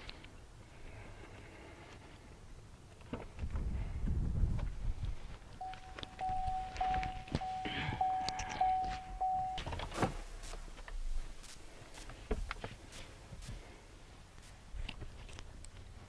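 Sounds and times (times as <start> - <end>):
car warning chime dinging: 5.6 - 9.9.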